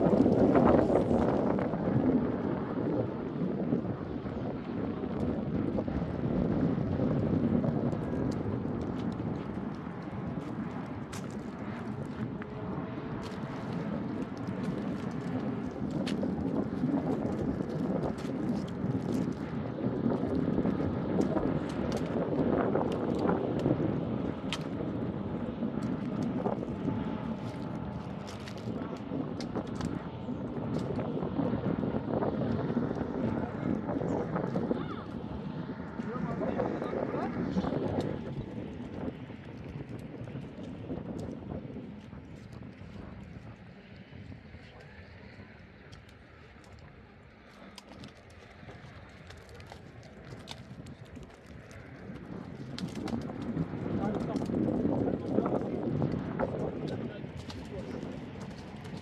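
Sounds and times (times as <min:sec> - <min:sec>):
wind buffeting microphone: 0:00.0 - 0:59.0
twigs and branches cracking: 0:08.3 - 0:12.4, 0:13.1 - 0:24.8, 0:25.6 - 0:30.1, 0:44.8 - 0:59.0.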